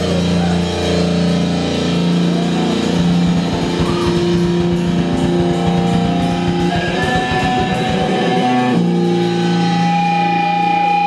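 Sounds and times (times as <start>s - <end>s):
bass guitar pulse: 0.0s - 11.0s
distorted electric guitar drone: 0.0s - 11.0s.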